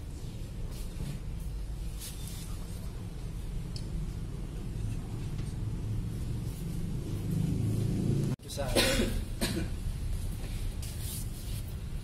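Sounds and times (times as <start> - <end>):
person coughing: 8.7 - 9.8.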